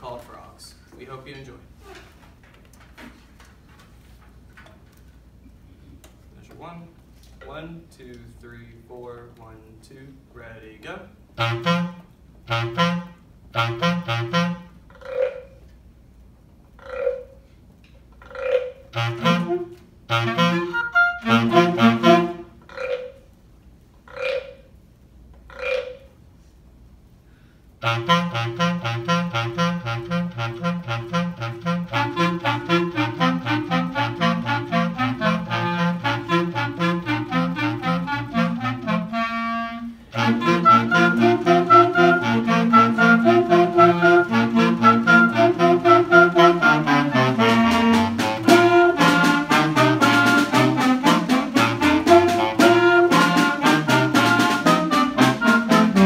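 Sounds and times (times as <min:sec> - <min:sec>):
saxophones and clarinets playing: 0:11.4 - 0:14.9, 0:18.9 - 0:22.6, 0:27.8 - 0:56.0.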